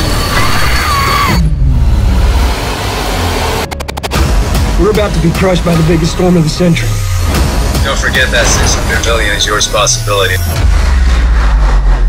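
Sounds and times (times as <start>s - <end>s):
deep rumbling drone: 0.0s - 12.0s.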